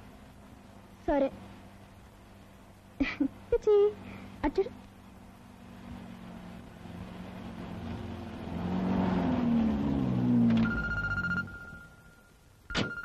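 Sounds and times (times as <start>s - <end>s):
car engine approaching: 0.0s - 12.7s
telephone bell ringing: 10.6s - 13.0s.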